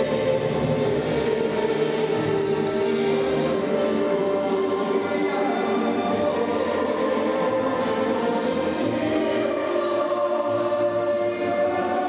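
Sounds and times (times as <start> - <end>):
choir singing long held notes: 0.0 - 12.0.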